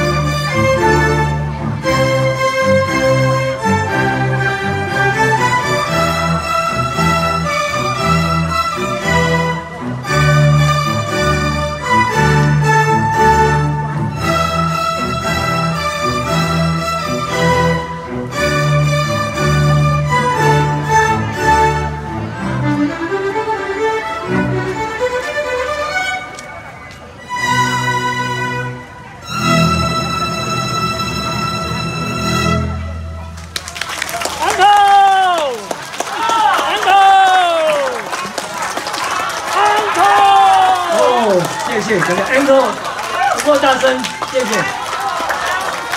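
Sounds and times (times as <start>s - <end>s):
string ensemble playing: 0.0s - 45.9s
audience clapping: 33.3s - 45.9s
crowd cheering shouts: 33.6s - 45.9s.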